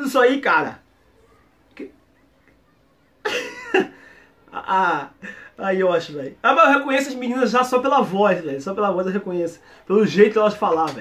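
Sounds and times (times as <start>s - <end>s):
man laughing: 3.3s - 5.1s.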